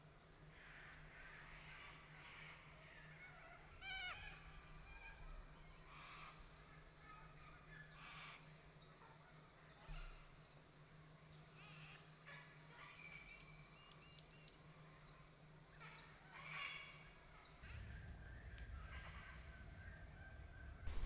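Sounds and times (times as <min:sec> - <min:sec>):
faint low hum: 0:17.0 - 0:21.0.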